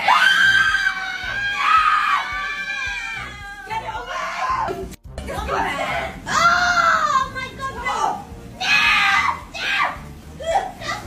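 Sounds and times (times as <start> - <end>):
woman screaming: 0.0 - 4.7, 6.3 - 7.2, 8.6 - 10.8.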